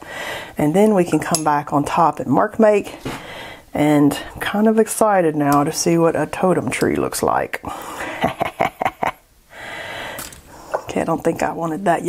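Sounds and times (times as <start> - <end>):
soft breath out: 0.0 - 0.6, 3.0 - 3.7, 9.5 - 10.9
woman laughing breathily: 7.7 - 10.2.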